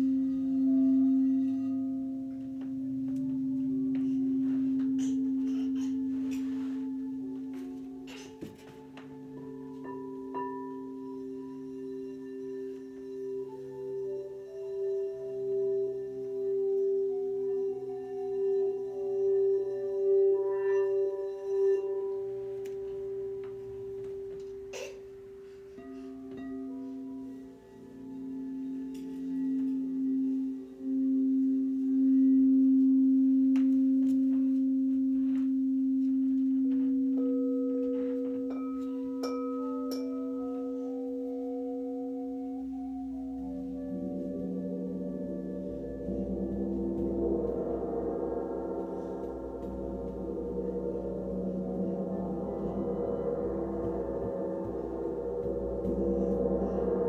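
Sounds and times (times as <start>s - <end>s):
singing bowls ringing: 0.0s - 57.0s.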